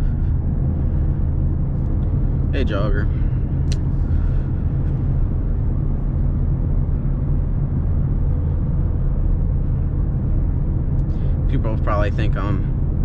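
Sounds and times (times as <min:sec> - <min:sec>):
car engine drone: 0:00.0 - 0:13.0.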